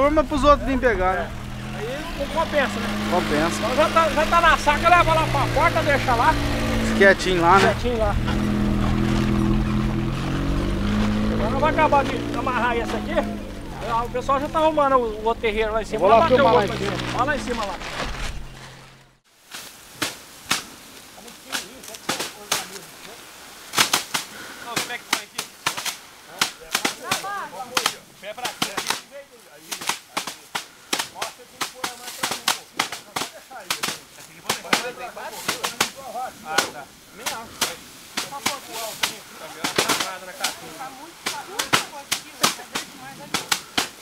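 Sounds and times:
rice stalks thwacking on wood: 19.5s - 22.9s, 23.7s - 44.0s.

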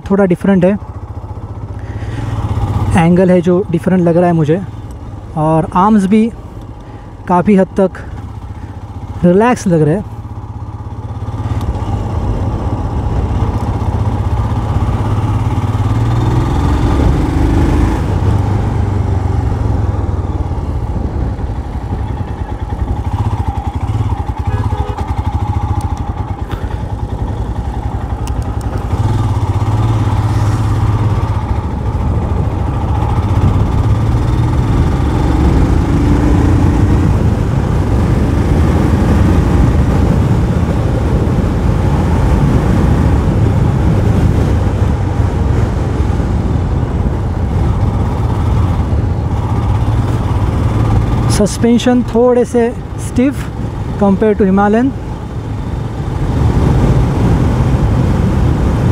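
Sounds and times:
motorcycle engine running: 0.0s - 58.9s.

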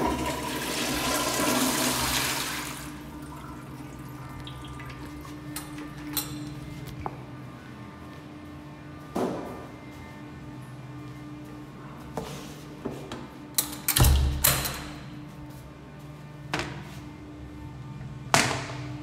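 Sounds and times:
toilet flushing: 0.0s - 5.4s.

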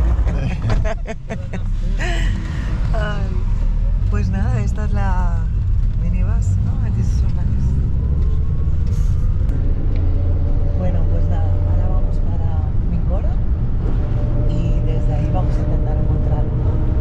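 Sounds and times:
minibus engine and road rumble: 0.0s - 17.0s.

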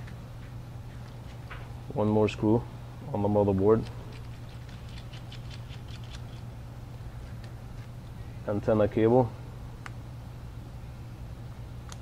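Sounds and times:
steady low hum: 0.0s - 12.0s
screwdriver ticking and scratching: 3.8s - 6.4s.

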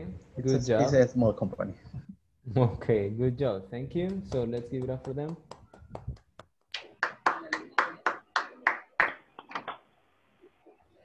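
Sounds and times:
hand clapping applause: 4.1s - 9.9s.

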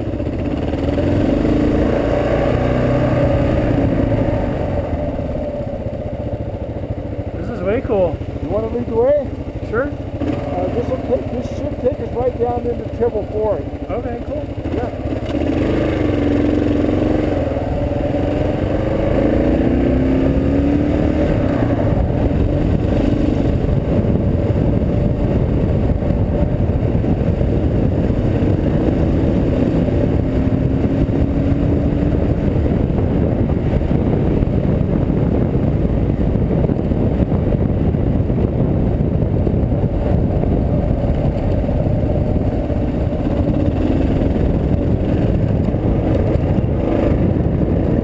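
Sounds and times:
motorcycle engine accelerating: 0.0s - 48.0s.

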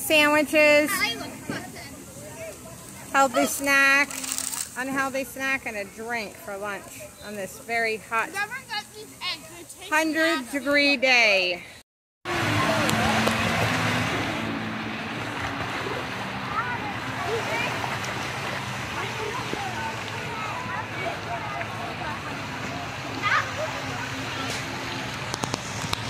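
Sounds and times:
splashing falling water: 12.3s - 26.0s
children calling and shrieking: 16.3s - 25.0s.

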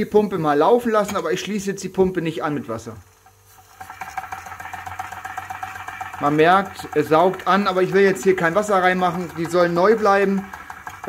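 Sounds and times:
model steam engine running: 2.9s - 11.0s.

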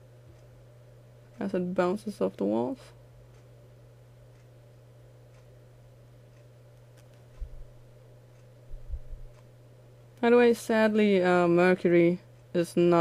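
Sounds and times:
steady low hum: 0.0s - 13.0s
soft low bumps: 8.7s - 9.4s.

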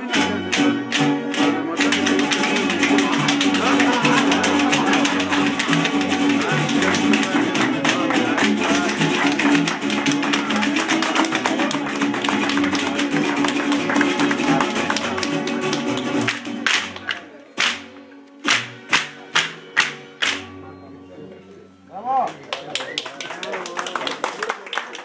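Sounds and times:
folk dance music with guitar: 0.0s - 23.7s
sharp strikes: 17.6s - 20.6s
percussive taps: 18.4s - 20.5s.

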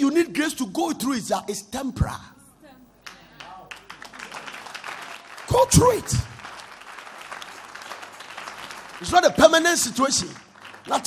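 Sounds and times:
congregation applauding: 3.0s - 11.0s.

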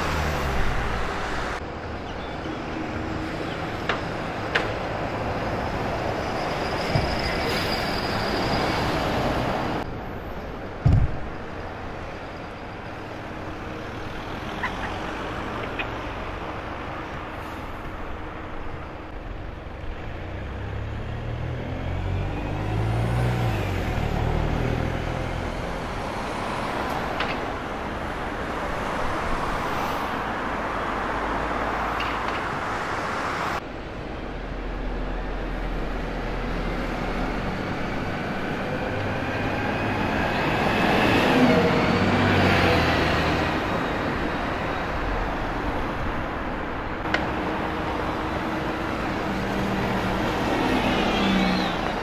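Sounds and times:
cars and buses passing: 0.0s - 52.0s
bus diesel engine pulling away: 19.4s - 27.9s, 34.5s - 52.0s.

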